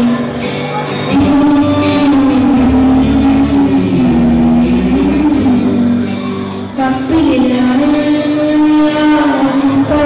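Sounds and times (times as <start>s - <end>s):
backing music: 0.0s - 10.0s
boy singing into a microphone: 0.0s - 10.0s.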